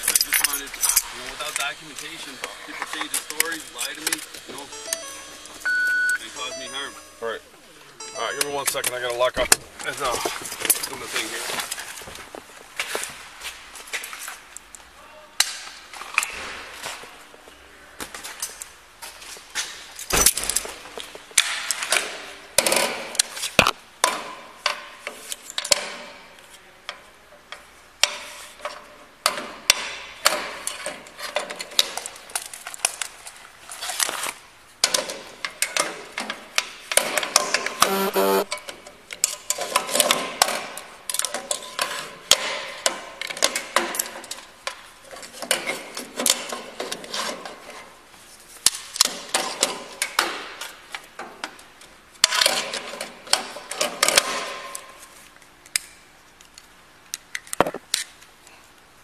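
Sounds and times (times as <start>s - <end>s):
brief buzz: 37.8s - 38.5s.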